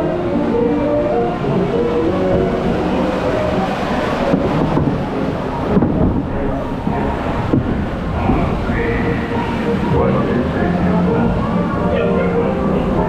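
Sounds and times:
low rumble of flume boat: 0.0s - 13.0s
ride show music: 0.0s - 13.0s.

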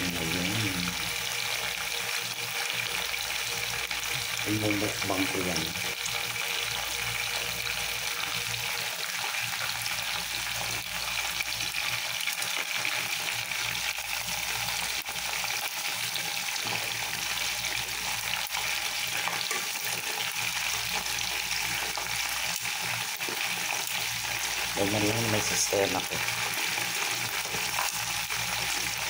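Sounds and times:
oil sizzling and crackling: 0.0s - 29.0s
metal tongs in oil: 18.5s - 21.1s.

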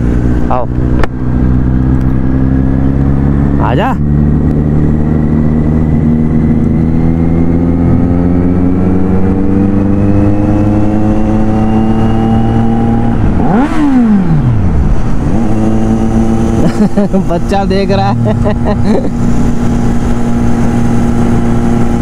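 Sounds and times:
motorcycle engine accelerating: 0.0s - 22.0s.

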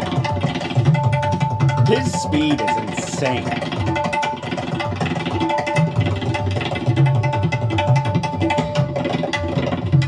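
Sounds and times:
rapid treble drum strokes: 0.0s - 10.0s.

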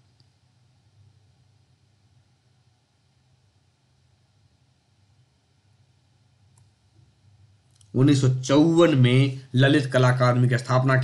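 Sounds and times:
faint low room hum: 0.0s - 11.0s
faint click: 0.1s - 0.4s, 6.5s - 6.8s
man speaking: 7.9s - 11.0s.

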